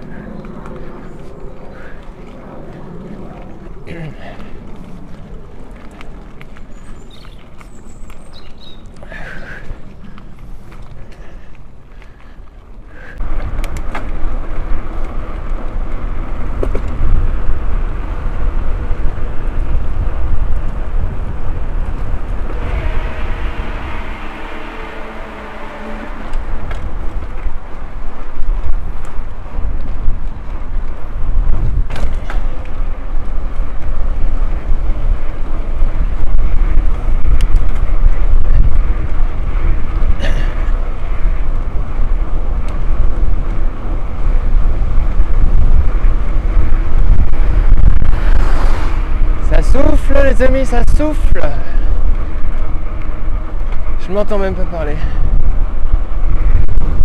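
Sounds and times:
wind buffeting microphone: 0.0s - 57.0s
pitched hum: 10.0s - 49.5s.

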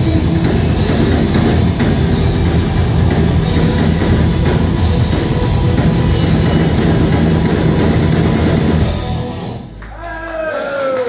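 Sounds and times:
electric guitars: 0.0s - 9.9s
bass guitar: 0.0s - 10.1s
drum kit: 0.0s - 10.1s.

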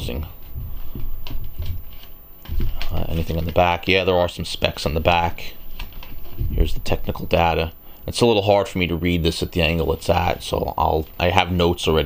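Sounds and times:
paper leaflet crackling: 0.7s - 4.0s.

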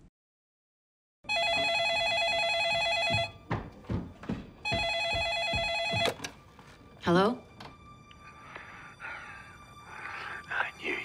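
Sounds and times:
telephone ringing: 1.3s - 3.4s, 4.6s - 6.4s.

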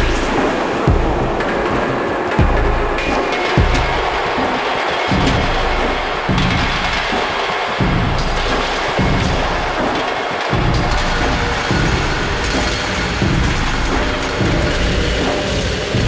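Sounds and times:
booming kick drums: 0.0s - 4.5s, 5.1s - 7.2s, 7.8s - 16.0s
dense noisy electronic wash: 0.0s - 16.0s.

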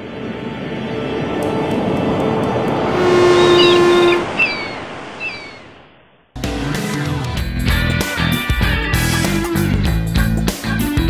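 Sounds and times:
ocean surf wash: 0.0s - 6.3s
short high falling calls: 3.0s - 5.8s.

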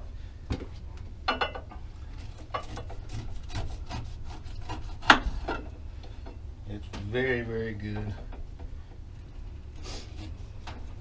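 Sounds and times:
knife cutting pineapple rind: 2.2s - 5.5s.

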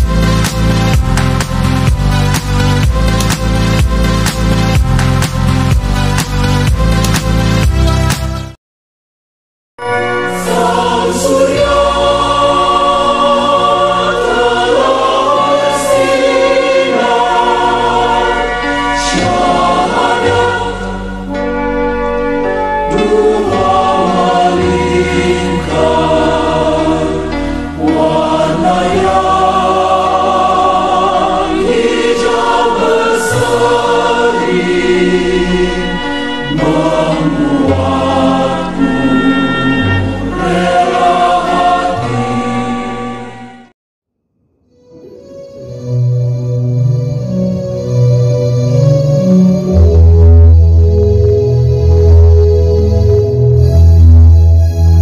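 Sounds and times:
choir singing: 9.8s - 43.4s
low accompaniment: 45.1s - 55.0s.

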